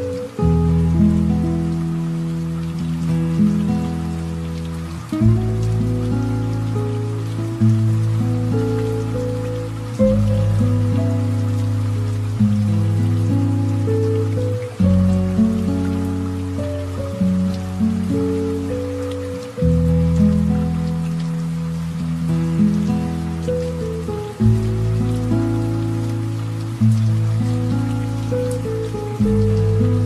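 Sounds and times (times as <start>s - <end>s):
light rain drops: 0.0s - 30.0s
soft relaxation piano music: 0.0s - 30.0s.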